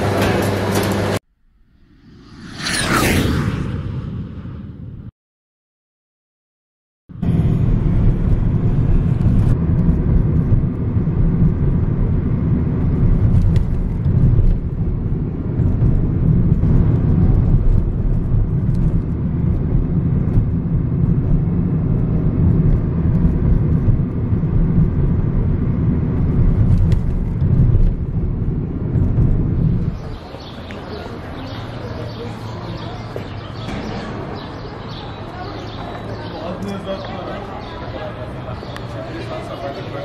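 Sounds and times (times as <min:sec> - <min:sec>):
road and engine rumble inside car: 0:07.2 - 0:30.2.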